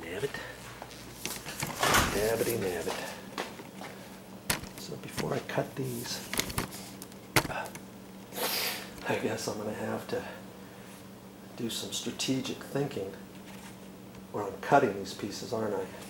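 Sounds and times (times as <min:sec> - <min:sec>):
man speaking indistinctly: 0:00.0 - 0:00.5, 0:01.9 - 0:03.2, 0:04.8 - 0:06.3, 0:14.3 - 0:16.0
steady low hum: 0:00.0 - 0:16.0.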